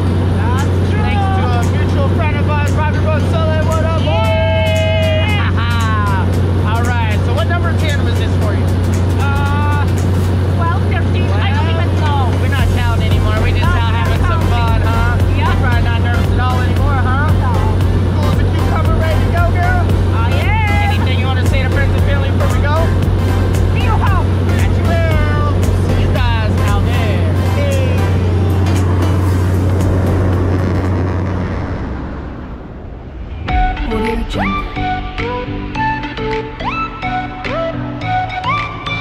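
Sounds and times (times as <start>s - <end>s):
music: 0.0s - 31.4s, 33.3s - 39.0s
airplane engine drone in cabin: 0.0s - 36.8s.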